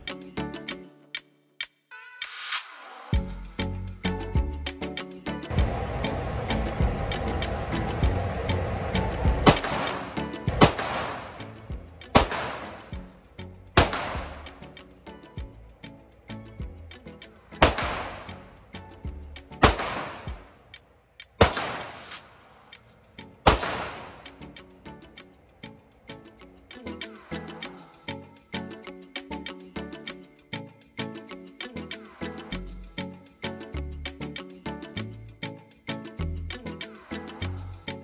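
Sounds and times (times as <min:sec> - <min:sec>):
pistol shots echoing indoors: 0:19.6 - 0:20.4, 0:21.4 - 0:22.2, 0:23.5 - 0:24.2.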